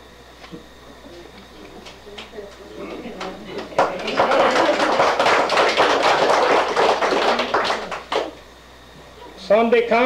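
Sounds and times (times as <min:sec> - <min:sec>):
congregation applauding: 0:03.2 - 0:08.4.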